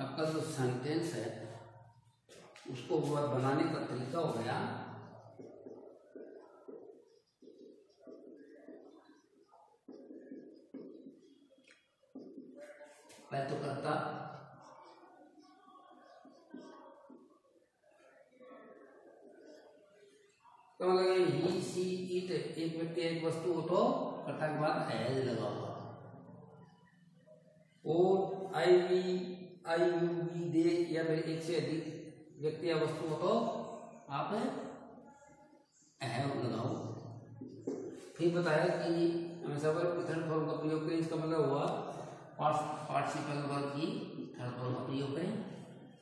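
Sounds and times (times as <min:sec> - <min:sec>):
bird cooing: 0:05.1 - 0:13.0.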